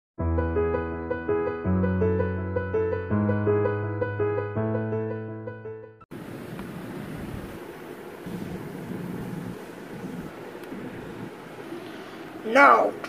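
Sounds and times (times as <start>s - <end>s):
steady background hiss: 6.2s - 13.0s.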